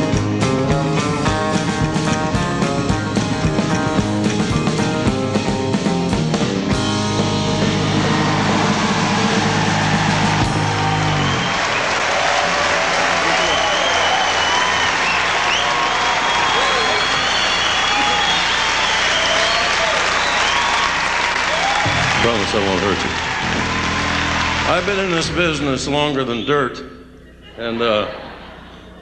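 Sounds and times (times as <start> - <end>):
live country band playing: 0.0 - 11.6, 21.7 - 26.9
audience applause and cheering: 6.7 - 26.3.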